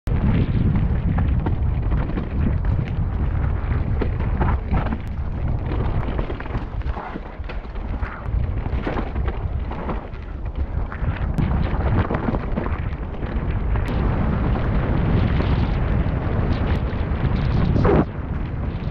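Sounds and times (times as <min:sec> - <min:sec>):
wind rumble on microphone: 0:00.1 - 0:18.9.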